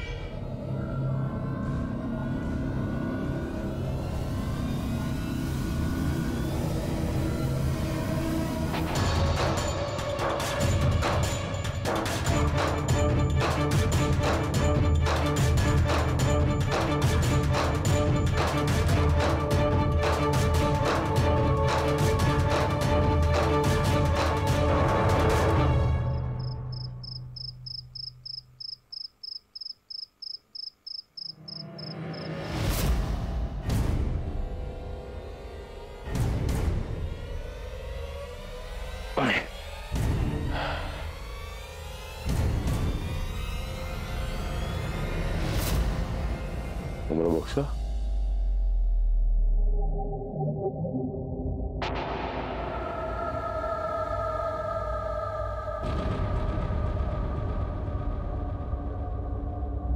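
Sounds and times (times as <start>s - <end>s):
cricket chirping: 26.2s - 32.4s.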